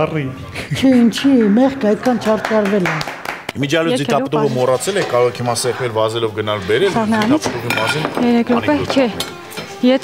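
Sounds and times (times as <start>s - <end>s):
people talking: 0.0s - 3.0s
pots and pans clinking: 4.3s - 6.2s, 6.8s - 10.0s.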